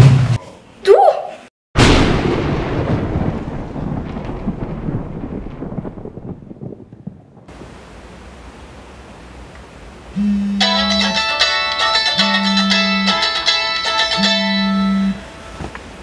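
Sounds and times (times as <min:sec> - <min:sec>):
loud rumbling boom: 0:01.8 - 0:07.5
faint low steady hum: 0:07.6 - 0:11.2.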